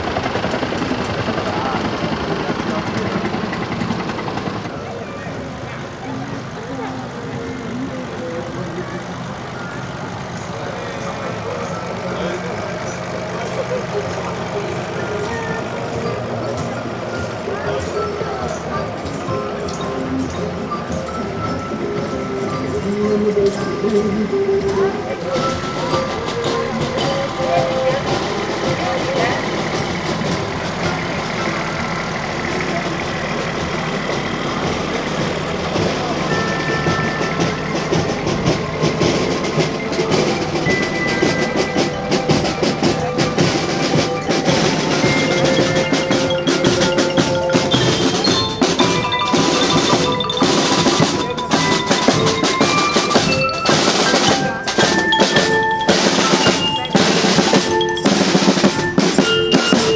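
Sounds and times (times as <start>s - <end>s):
bell lyres melody: 4.7s - 59.9s
snare and bass drums: 25.3s - 59.9s.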